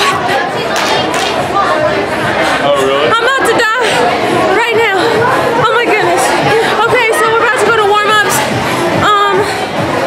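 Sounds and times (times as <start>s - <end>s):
background chatter: 0.0s - 10.0s
woman talking: 3.1s - 3.9s, 4.5s - 8.4s, 9.0s - 9.5s.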